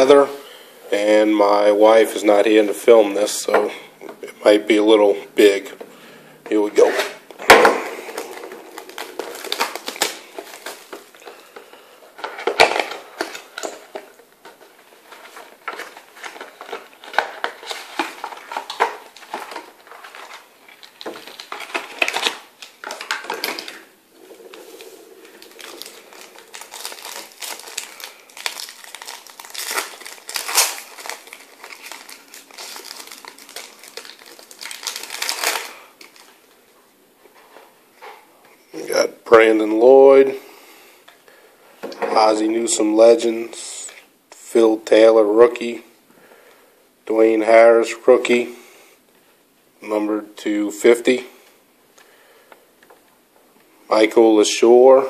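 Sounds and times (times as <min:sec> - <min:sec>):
plastic shrink wrap crinkling: 0:06.5 - 0:36.7.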